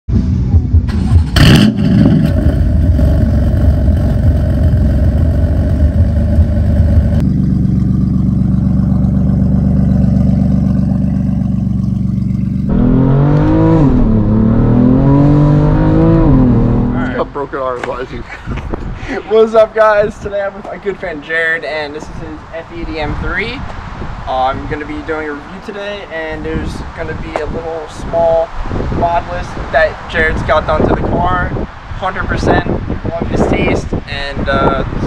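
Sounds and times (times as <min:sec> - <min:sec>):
car engine idling: 0:00.1 - 0:14.6
car engine revving: 0:00.1 - 0:17.3
exhaust crack: 0:00.1 - 0:19.0
person laughing: 0:18.2 - 0:19.4.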